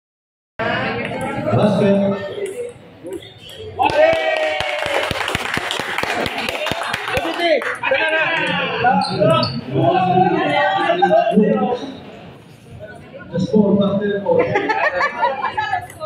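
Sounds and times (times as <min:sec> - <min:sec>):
people's voices: 0:00.6 - 0:05.4, 0:06.0 - 0:16.0.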